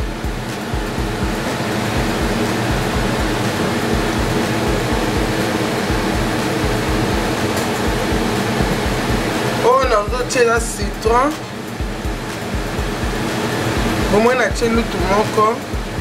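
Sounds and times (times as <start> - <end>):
low hum: 0.0 - 15.1
fan whooshing: 0.0 - 16.0
regular low throb: 0.0 - 16.0.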